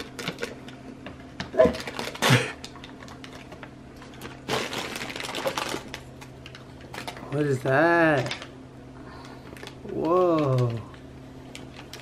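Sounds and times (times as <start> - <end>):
wrapping paper crinkling and tearing: 0.0 - 0.6, 1.6 - 8.5, 9.2 - 10.8.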